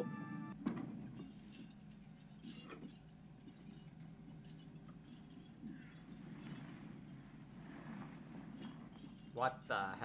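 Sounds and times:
low steady hum: 0.0 - 10.0
light clinks and ticks: 0.7 - 10.0.

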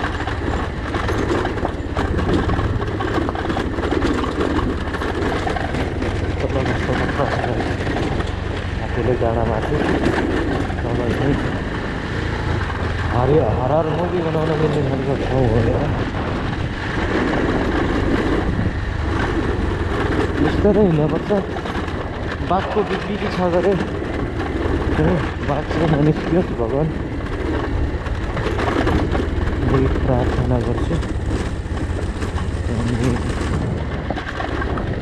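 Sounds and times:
motorcycle engine rumbling: 0.0 - 35.0
tyres on gravel road: 0.0 - 35.0
person's wavering voice: 32.6 - 33.3.

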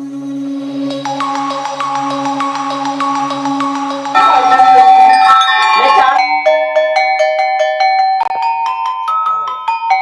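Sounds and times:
copper bells struck with mallet: 1.0 - 10.0.

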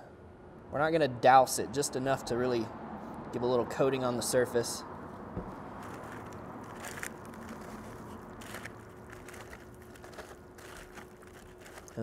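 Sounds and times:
handling wet meat: 5.4 - 12.0
foil crinkling: 5.8 - 12.0.

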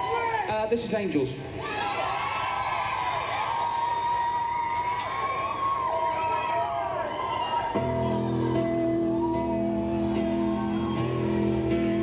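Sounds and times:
crowd cheering and whooping: 1.6 - 12.0
song with sustained chords: 7.8 - 12.0.

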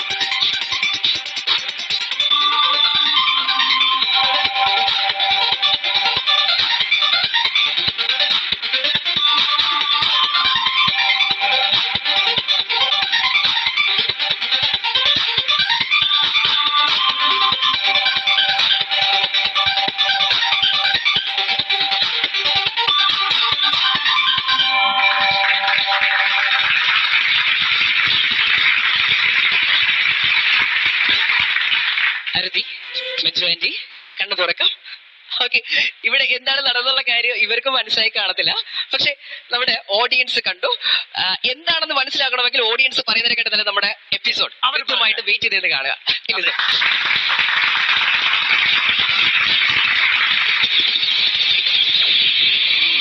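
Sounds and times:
audience applauding: 24.0 - 32.6, 46.3 - 53.0.

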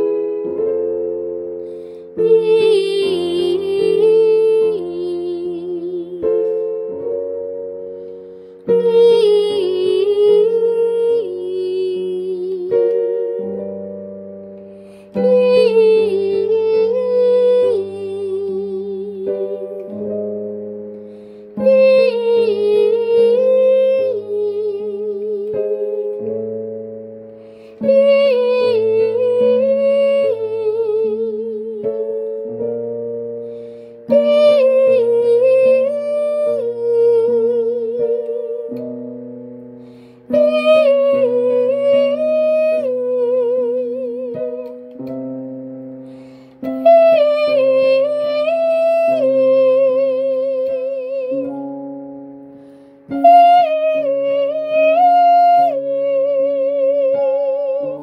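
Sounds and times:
woman singing vocal warm-up: 2.1 - 7.2, 8.6 - 13.8, 14.9 - 20.4, 21.5 - 26.6, 27.8 - 33.0, 34.0 - 39.1, 40.0 - 45.1, 46.3 - 52.0.

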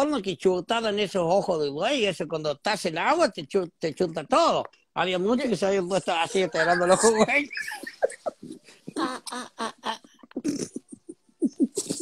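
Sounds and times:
man laughing: 6.2 - 10.0.

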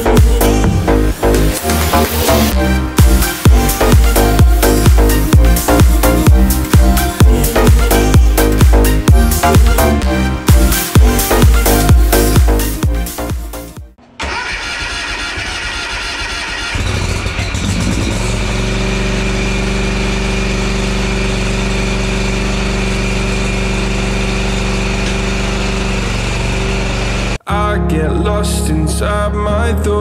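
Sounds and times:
mower engine starting and running: 0.0 - 27.4.

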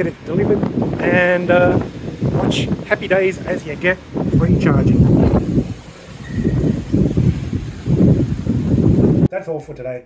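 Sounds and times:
wind buffeting microphone: 0.0 - 9.3.

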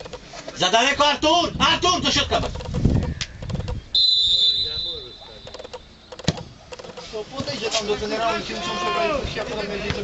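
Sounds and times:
referee's whistle: 3.9 - 5.6.

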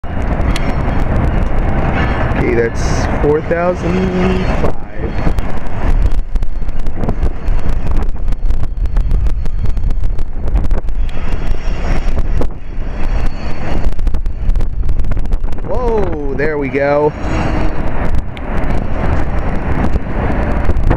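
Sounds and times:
train clicks: 0.0 - 15.7, 17.2 - 20.9
diesel locomotive rumble: 0.0 - 20.9
wind on microphone: 0.0 - 20.9.

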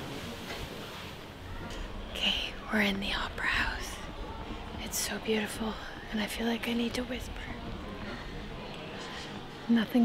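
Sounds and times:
woman whispering: 2.2 - 4.1.

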